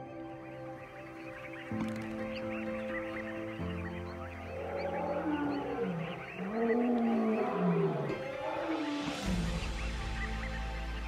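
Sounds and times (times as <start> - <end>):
large animal moaning calls: 4.4 - 9.2.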